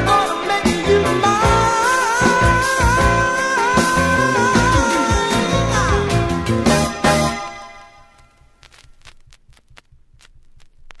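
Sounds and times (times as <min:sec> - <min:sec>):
vinyl record hiss: 0:00.0 - 0:11.0
vinyl pops and crackles: 0:07.6 - 0:11.0.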